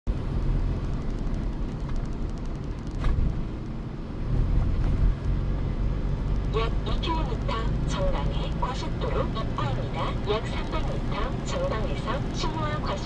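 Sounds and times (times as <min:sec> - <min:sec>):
car road rumble: 0:00.1 - 0:13.0.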